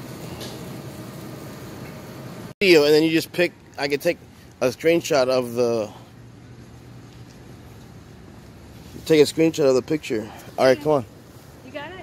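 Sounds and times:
street ambience: 0.0s - 12.0s.

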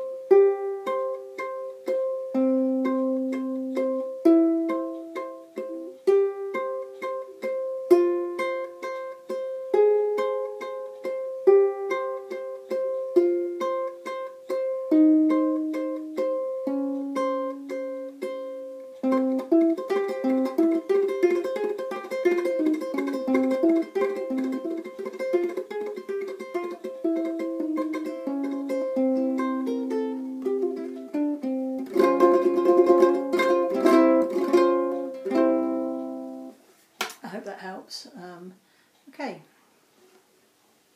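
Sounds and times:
ukulele tremolo fingerstyle: 0.0s - 37.2s.

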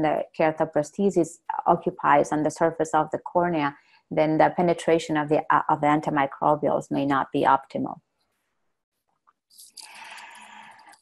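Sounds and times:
person breathing in: 9.8s - 11.0s.

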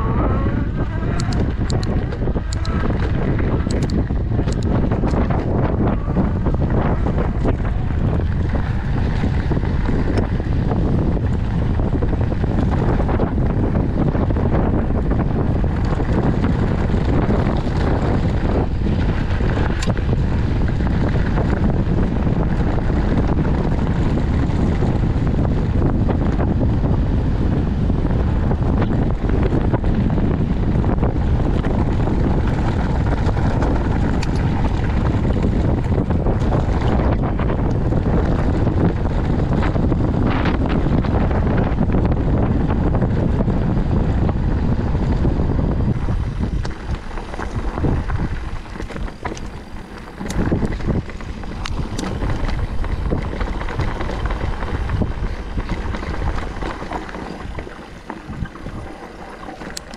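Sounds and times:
bike ticking on dirt trail: 0.0s - 59.9s
wind buffeting microphone: 0.0s - 59.9s.

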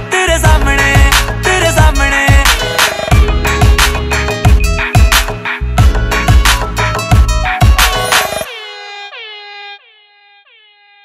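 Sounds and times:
echoing horn-like synth note: 8.4s - 11.0s.

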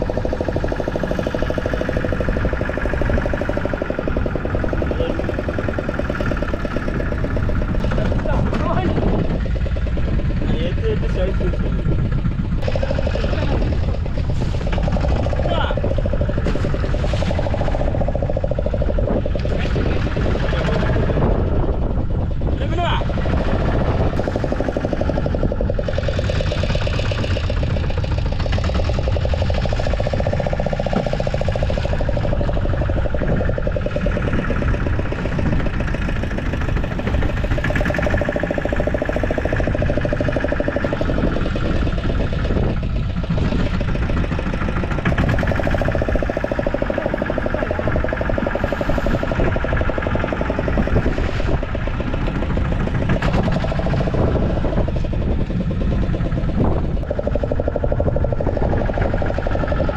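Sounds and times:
boat engine idling: 0.0s - 59.9s.

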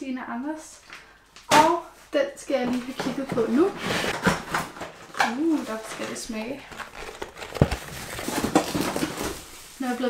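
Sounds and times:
packaging crinkling and rustling: 2.8s - 10.0s.

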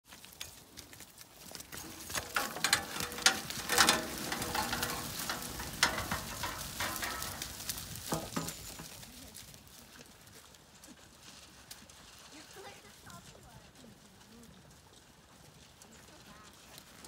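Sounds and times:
sheep hooves crackling and rustling: 0.0s - 17.0s.

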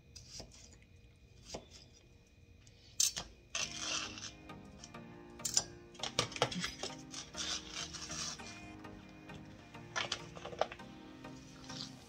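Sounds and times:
background music with ticking beat: 3.6s - 12.0s.

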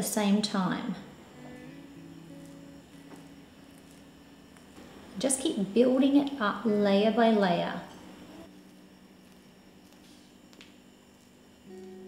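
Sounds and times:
faint soft background music: 0.0s - 12.0s.

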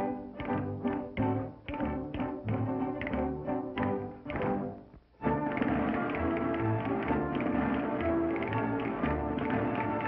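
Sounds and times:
cartoon orchestral music: 0.0s - 10.0s.

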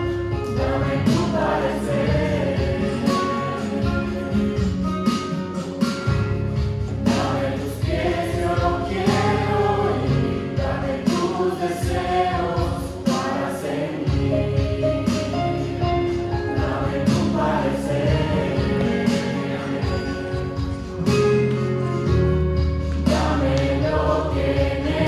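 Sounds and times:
instrumental accompaniment: 0.0s - 25.0s
group singing worship song: 0.4s - 4.8s, 6.9s - 21.0s, 22.9s - 25.0s.

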